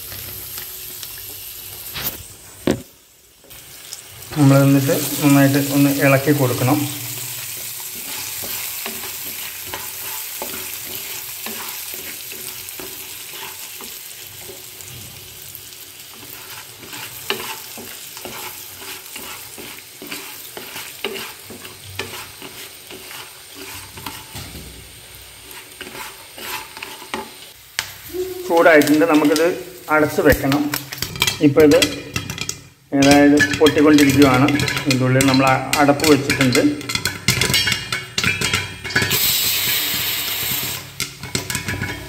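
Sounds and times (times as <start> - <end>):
kernels sizzling in hot oil: 0.0 - 42.0
popcorn popping: 28.6 - 42.0.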